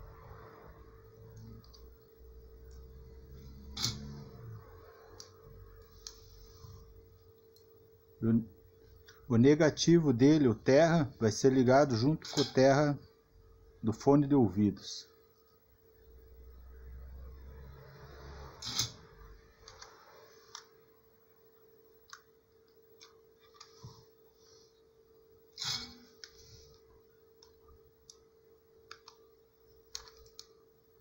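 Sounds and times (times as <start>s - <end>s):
small clicks of wires handled: 29.9s - 30.6s.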